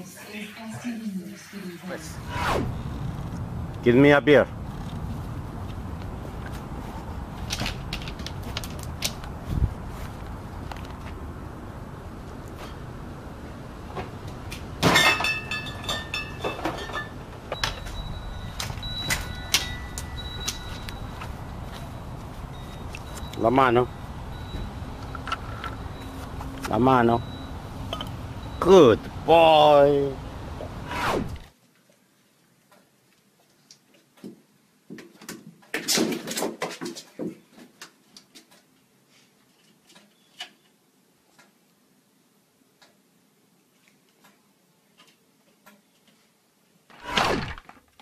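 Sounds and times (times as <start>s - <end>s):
glass bottles knocking and clinking: 14.8s - 17.8s.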